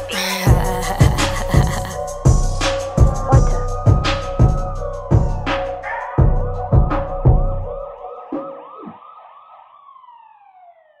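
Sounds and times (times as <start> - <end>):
hip-hop drum hits: 0.5 - 5.6
siren sound effect wailing: 7.8 - 11.0.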